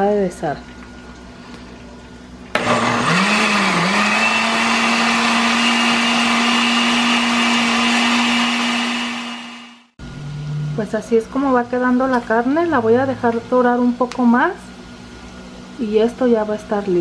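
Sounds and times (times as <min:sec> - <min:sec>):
blender grinding: 0:02.5 - 0:09.9.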